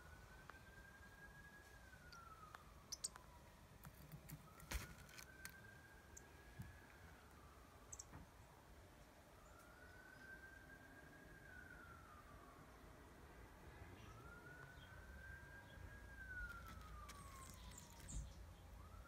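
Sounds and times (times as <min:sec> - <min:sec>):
distant siren wailing: 0:00.0 - 0:19.0.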